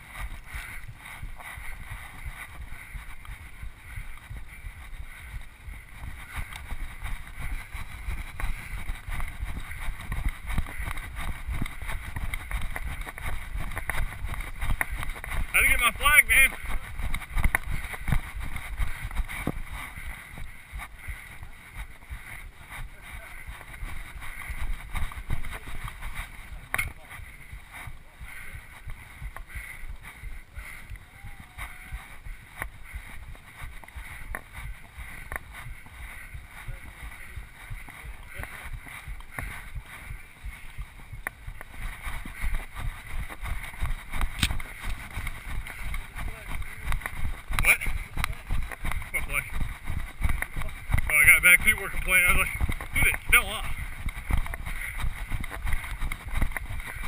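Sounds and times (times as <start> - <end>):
footsteps on dirt road: 0.0 - 57.0
camera jostling: 16.6 - 20.1, 40.8 - 51.1.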